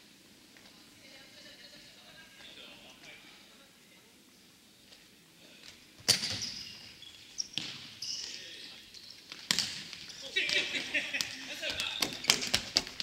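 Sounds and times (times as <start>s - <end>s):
sneakers squeaking: 6.0s - 13.0s
players' voices: 10.1s - 12.6s.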